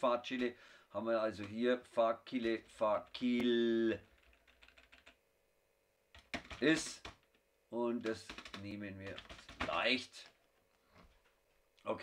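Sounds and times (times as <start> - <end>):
faint keyboard typing: 0.3 - 0.6, 1.2 - 5.2, 6.1 - 11.9.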